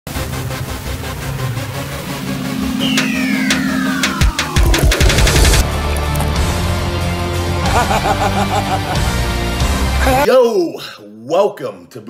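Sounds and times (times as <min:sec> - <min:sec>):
pulsing hissing intro music: 0:00.2 - 0:08.2
low drone: 0:00.8 - 0:06.9.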